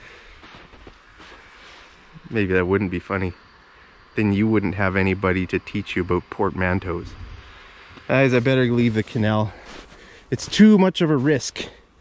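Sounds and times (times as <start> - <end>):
faint even hiss: 0.0 - 12.0.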